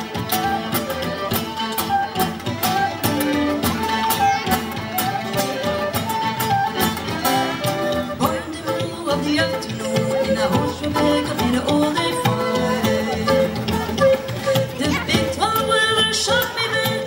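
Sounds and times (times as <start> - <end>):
fiddle melody: 0.0 - 17.0
frame drum beat: 0.0 - 17.0
guitar accompaniment: 0.0 - 17.0.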